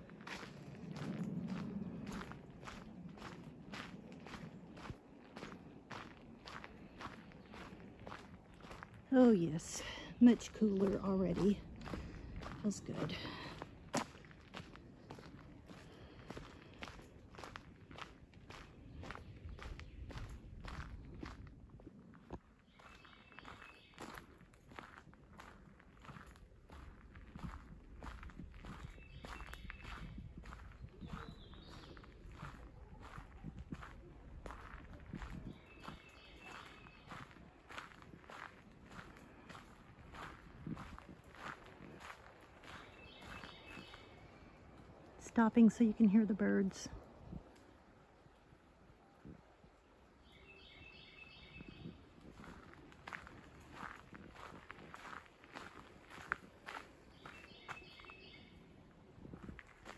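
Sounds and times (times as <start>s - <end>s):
footsteps on gravel: 0.0s - 44.2s, 51.6s - 58.3s.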